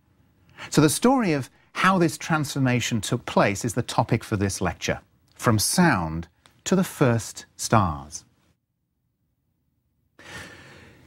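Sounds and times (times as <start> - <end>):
man breathing in: 10.2 - 11.0.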